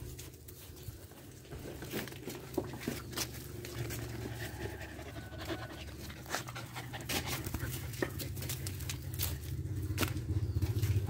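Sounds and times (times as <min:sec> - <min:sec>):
dogs panting: 0:02.3 - 0:11.0.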